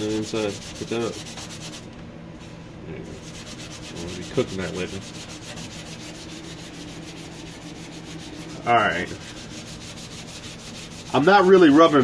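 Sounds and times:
scouring pad scrubbing stovetop: 0.0s - 1.8s, 3.2s - 12.0s.

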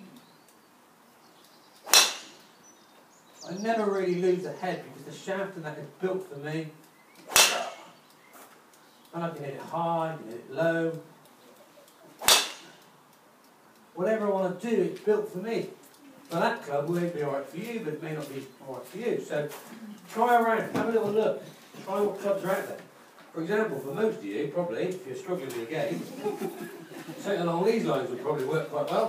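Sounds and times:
golf club striking ball: 1.8s - 2.6s, 7.2s - 8.0s, 12.2s - 12.9s.

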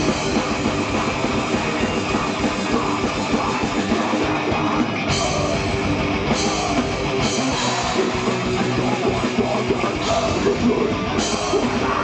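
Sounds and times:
distorted electric guitars: 0.0s - 12.0s.

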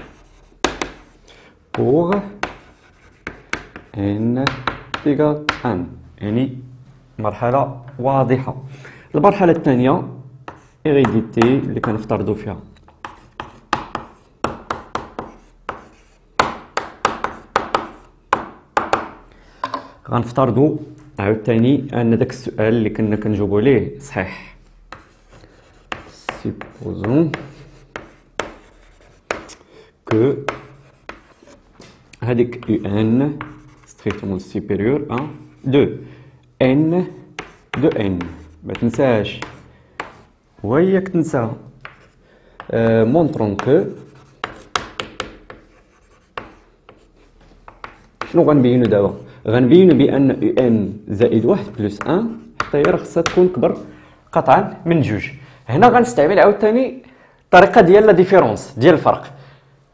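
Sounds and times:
chalk scratching: 0.0s - 5.0s, 10.5s - 11.6s, 13.0s - 18.2s, 24.9s - 35.8s, 36.8s - 40.4s, 41.8s - 49.3s, 49.9s - 53.5s
chalk tapping on blackboard: 0.0s - 5.7s, 10.4s - 12.1s, 12.9s - 19.9s, 24.9s - 35.7s, 36.8s - 40.3s, 41.7s - 49.3s, 49.9s - 53.8s
person speaking: 0.0s - 16.2s, 19.5s - 59.4s.

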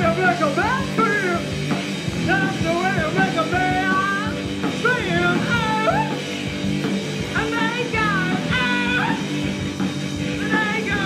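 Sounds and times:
drum beat: 0.0s - 11.0s
live rock band playing: 0.0s - 11.0s.

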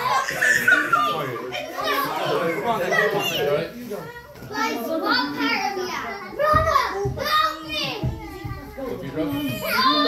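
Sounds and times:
children calling and chattering: 0.0s - 10.0s.

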